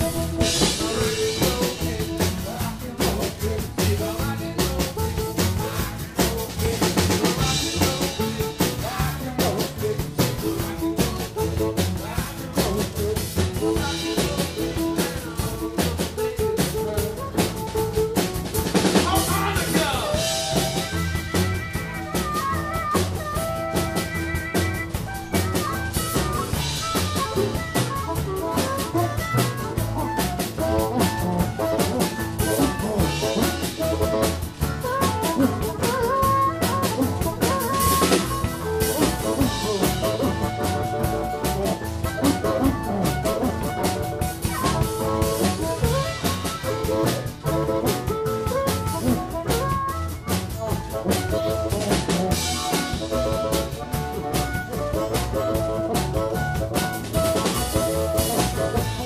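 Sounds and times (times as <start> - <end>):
drum kit: 0.0 - 59.0
harmonica playing lead: 0.0 - 59.0.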